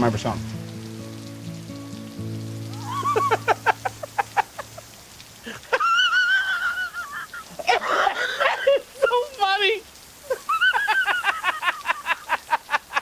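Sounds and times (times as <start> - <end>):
man laughing: 2.8 - 9.4, 10.2 - 13.0.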